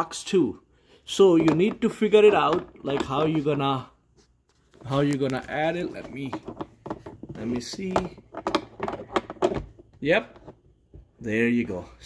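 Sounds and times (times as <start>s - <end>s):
filter holder clicking and scraping: 4.9s - 10.6s.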